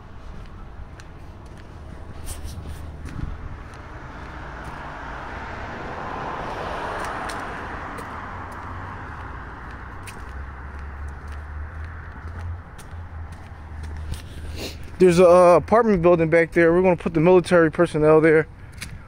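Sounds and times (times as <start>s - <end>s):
car road noise rumble: 0.0s - 19.0s.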